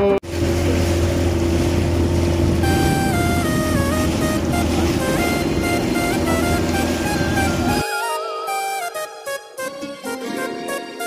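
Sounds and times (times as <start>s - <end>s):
motorboat engine drone: 0.0s - 9.3s
rushing water: 0.2s - 11.0s
stepped musical melody: 2.6s - 11.0s.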